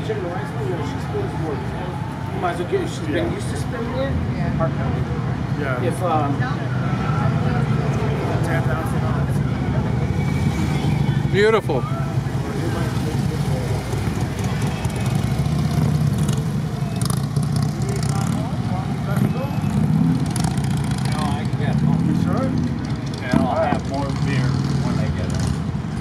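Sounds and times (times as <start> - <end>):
motorcycles passing: 0.0 - 26.0.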